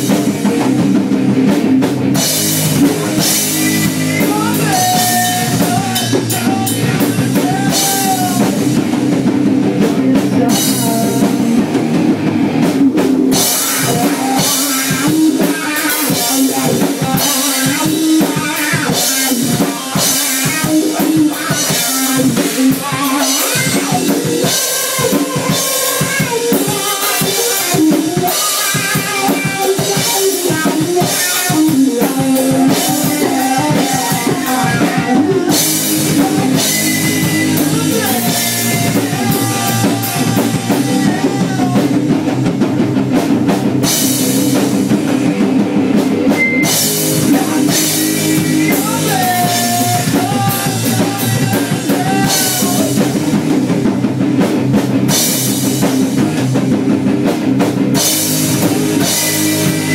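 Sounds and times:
distorted electric guitar: 0.0s - 59.9s
drum kit: 0.0s - 59.9s.

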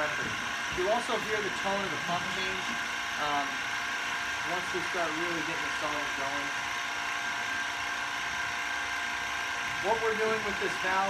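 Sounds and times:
pump running steadily: 0.0s - 11.0s.

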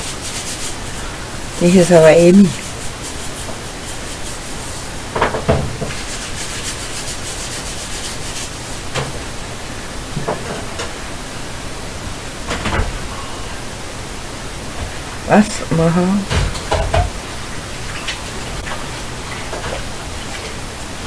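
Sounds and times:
static hiss: 0.0s - 21.0s.

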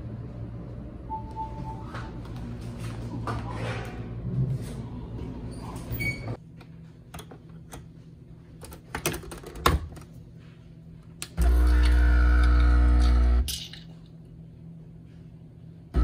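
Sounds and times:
coffee machine pump buzzing: 11.4s - 13.5s.

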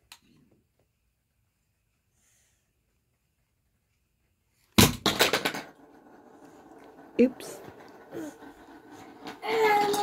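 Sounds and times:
plastic toy blocks clattering: 5.0s - 10.0s.

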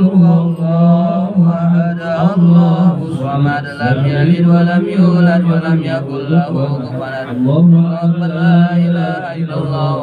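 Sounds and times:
men chanting through a microphone: 0.0s - 10.0s.

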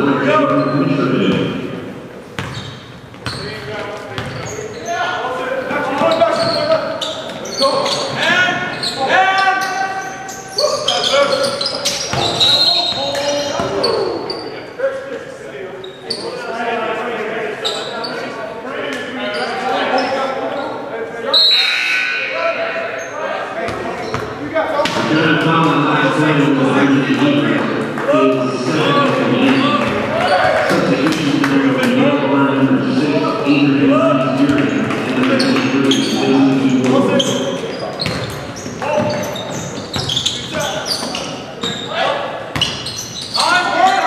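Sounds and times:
voices in a gym: 0.0s - 44.0s.

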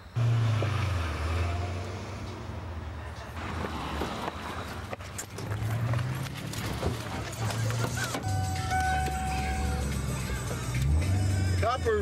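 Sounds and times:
car engine droning: 0.0s - 12.0s
car radio music: 7.0s - 12.0s.

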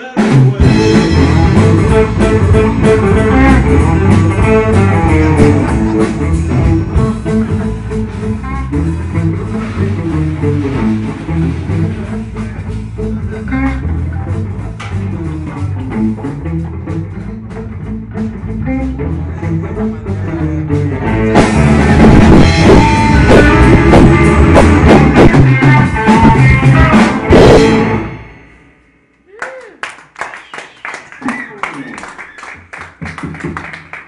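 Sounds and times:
people talking: 0.0s - 0.8s, 31.2s - 32.1s
blues rock band playing live: 0.0s - 28.7s
scattered clapping: 29.4s - 34.0s.

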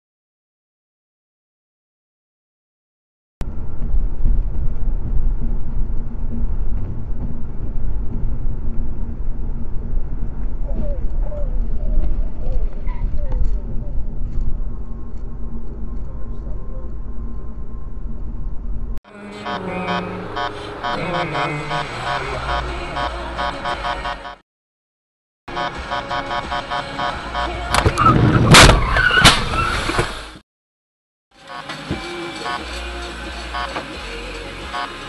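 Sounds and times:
car road and engine rumble: 3.4s - 24.4s
pitched sounds: 19.1s - 24.4s, 25.5s - 28.0s.

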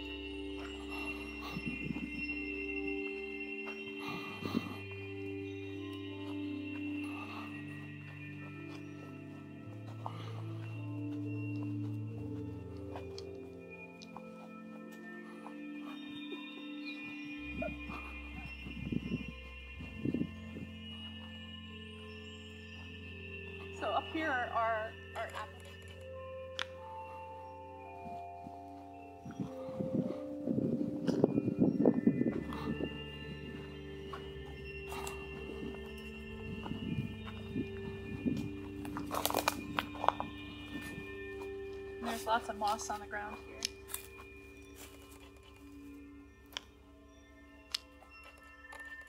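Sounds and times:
background music with held notes: 0.0s - 49.0s.

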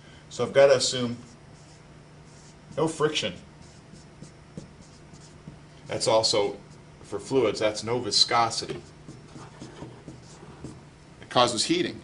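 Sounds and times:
low steady hum: 0.0s - 12.0s
marker writing on whiteboard: 1.2s - 7.3s, 8.2s - 10.9s.

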